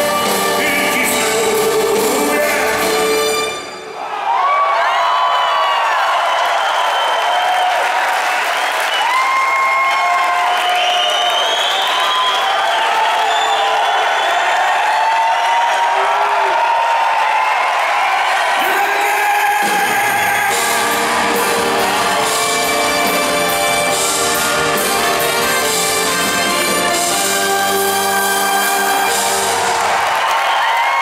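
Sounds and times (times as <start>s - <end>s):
band playing: 0.0s - 4.0s, 18.6s - 30.4s
audience cheering and applauding: 0.0s - 31.0s
shouts and whistles: 3.9s - 23.3s, 29.8s - 31.0s.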